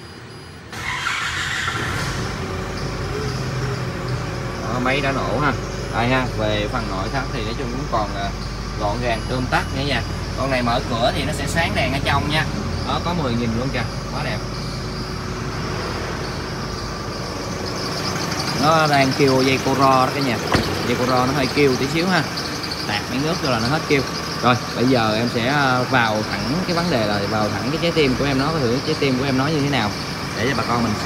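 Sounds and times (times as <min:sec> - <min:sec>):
diesel truck engine idling: 0:00.0 - 0:31.0
drive belt noise: 0:00.3 - 0:31.0.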